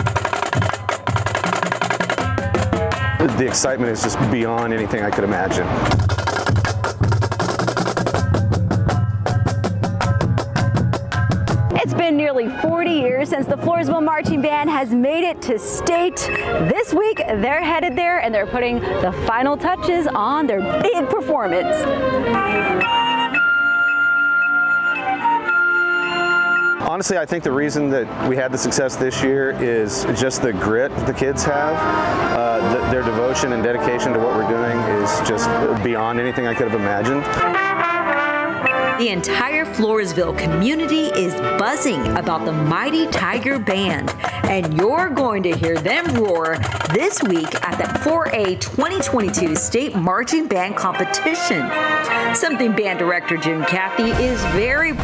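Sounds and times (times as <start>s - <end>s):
marching bass drums: 0.0s - 14.9s, 42.1s - 50.1s, 54.1s - 55.0s
wind instruments: 0.0s - 55.0s
flutes playing long notes: 15.9s - 26.9s, 31.6s - 39.2s.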